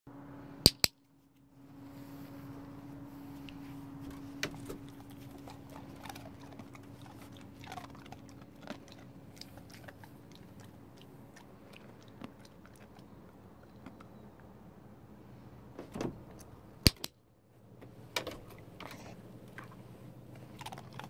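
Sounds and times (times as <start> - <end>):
faint low hum: 0.1 - 21.0
dog claws on wooden decking: 4.0 - 9.9.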